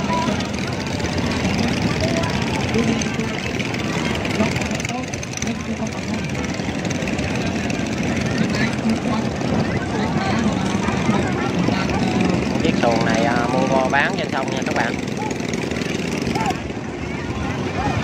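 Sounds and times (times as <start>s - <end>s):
people's voices: 0.0s - 18.0s
small boat motors droning: 0.0s - 18.0s.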